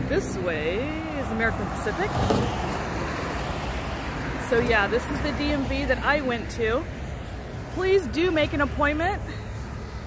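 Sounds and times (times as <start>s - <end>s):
traffic passing on road: 0.0s - 10.0s.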